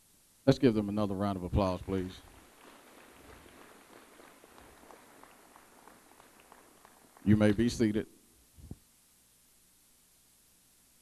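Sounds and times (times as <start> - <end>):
low even hiss: 0.0 - 11.0
sparse applause: 1.3 - 8.0.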